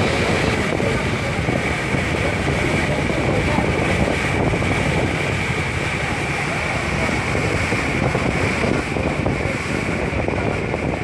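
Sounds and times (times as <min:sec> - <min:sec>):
boat engine rumble: 0:00.0 - 0:11.0
constant high whine: 0:00.0 - 0:11.0
wind on microphone: 0:00.0 - 0:11.0.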